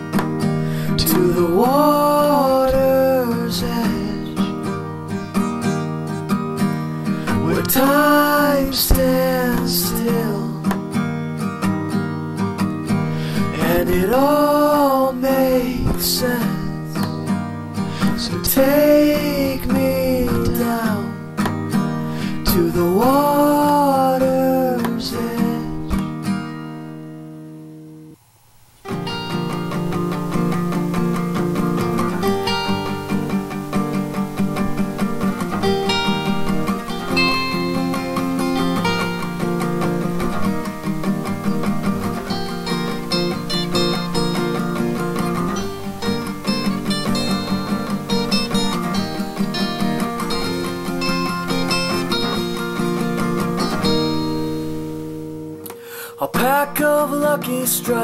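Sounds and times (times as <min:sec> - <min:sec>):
acoustic guitar picking and strumming: 0:00.0 - 0:58.0.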